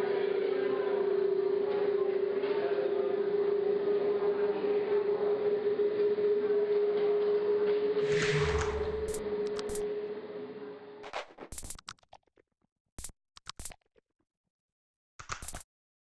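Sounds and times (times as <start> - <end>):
steady low drone: 8.0 - 11.0.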